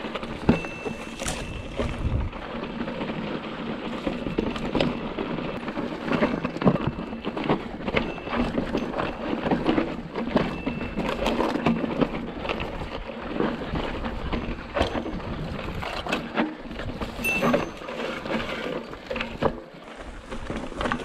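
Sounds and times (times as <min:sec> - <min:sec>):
bike clattering over rocks: 0:00.0 - 0:21.0
bike tyres crunching on stones: 0:00.0 - 0:21.0.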